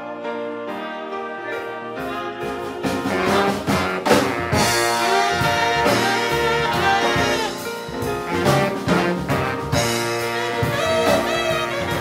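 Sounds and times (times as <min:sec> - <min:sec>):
jazz horn section playing: 0:00.0 - 0:12.0
rhythm section: 0:00.7 - 0:12.0.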